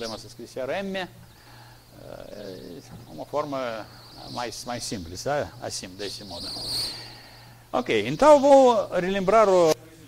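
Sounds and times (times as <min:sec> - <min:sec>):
high-pitched whine: 0:00.0 - 0:09.8
low steady hum: 0:00.0 - 0:10.0
man speaking haltingly: 0:02.0 - 0:06.7, 0:07.7 - 0:10.0.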